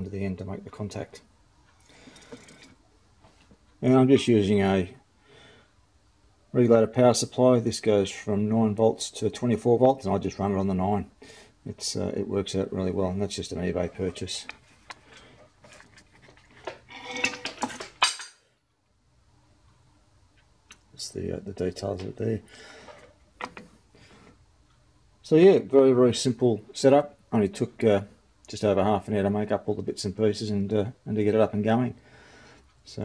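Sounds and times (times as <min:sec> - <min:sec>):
man speaking: 0:00.0 - 0:01.2, 0:03.8 - 0:05.0, 0:06.5 - 0:11.1, 0:11.7 - 0:14.6, 0:21.0 - 0:22.5, 0:25.2 - 0:32.0
small hard parts clattering: 0:01.9 - 0:02.8, 0:14.4 - 0:18.4.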